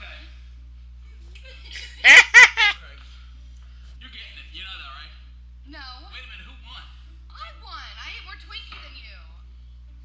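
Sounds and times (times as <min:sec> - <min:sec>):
man laughing loudly: 0:01.8 - 0:02.8.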